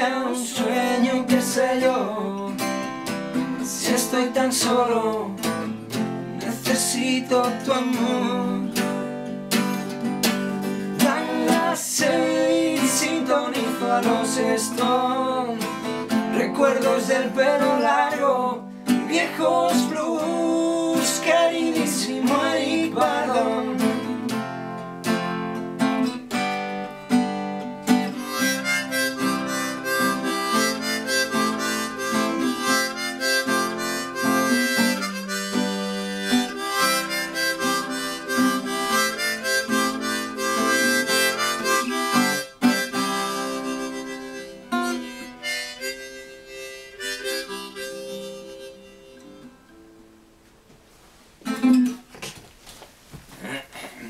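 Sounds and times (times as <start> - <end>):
strummed acoustic guitar: 0.0 - 50.3, 51.4 - 52.3
harmonica solo: 8.9 - 18.4, 27.9 - 49.6.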